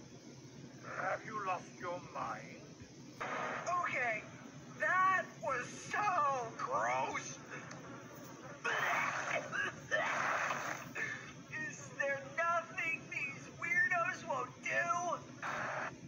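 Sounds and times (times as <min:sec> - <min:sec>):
cartoon retching and gagging: 0:08.7 - 0:10.9.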